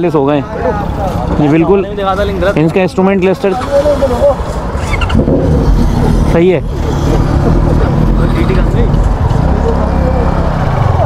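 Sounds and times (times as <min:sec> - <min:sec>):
motorcycle engines running: 0:00.0 - 0:11.0.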